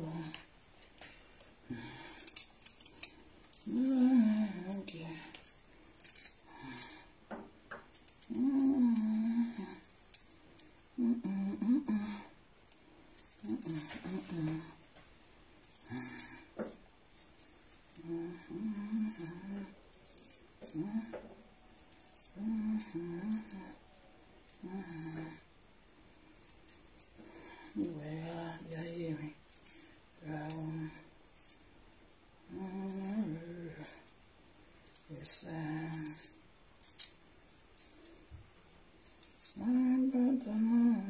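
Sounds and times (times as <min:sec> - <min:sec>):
woman humming: 0:00.0 - 0:00.5, 0:01.7 - 0:02.4, 0:03.5 - 0:05.5, 0:08.2 - 0:09.9, 0:11.0 - 0:12.4, 0:13.4 - 0:14.8, 0:17.9 - 0:21.4, 0:22.0 - 0:25.4, 0:30.2 - 0:31.1, 0:32.5 - 0:34.1, 0:35.0 - 0:36.3, 0:39.4 - 0:41.0
knife clicking and scraping: 0:02.1 - 0:03.9, 0:04.8 - 0:07.0, 0:21.8 - 0:23.5, 0:36.0 - 0:38.2.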